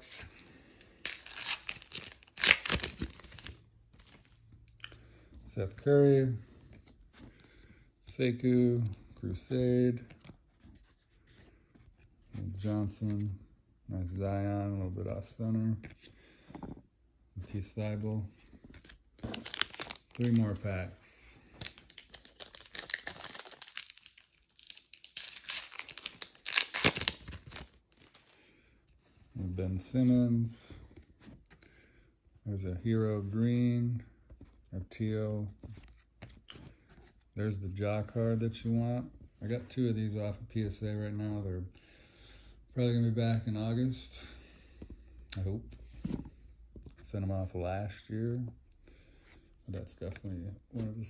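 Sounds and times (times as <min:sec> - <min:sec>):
foil wrapper tearing and crinkling: 0:01.0 - 0:03.6, 0:19.4 - 0:20.4, 0:21.6 - 0:28.2.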